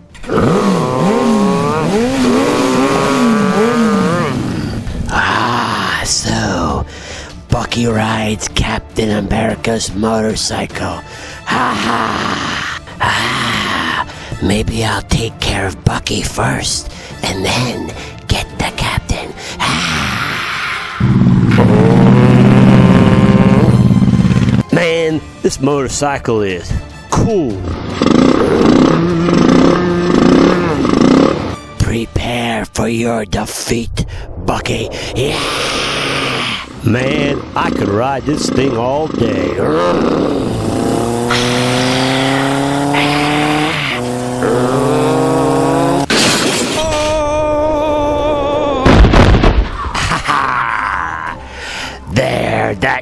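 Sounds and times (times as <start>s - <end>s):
motorcycle engine revving: 0.2s - 4.9s, 21.0s - 24.6s, 27.7s - 31.6s, 37.3s - 46.1s
loud boom: 34.1s - 36.9s, 48.8s - 49.9s.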